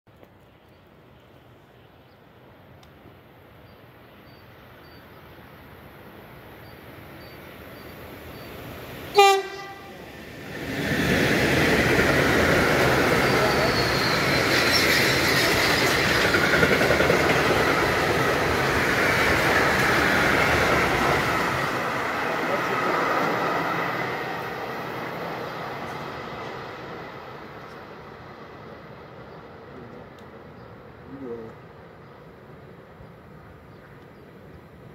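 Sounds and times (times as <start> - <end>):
train wheels rushing on rails: 7.5 - 30.9
train horn blast: 9.1 - 10.0.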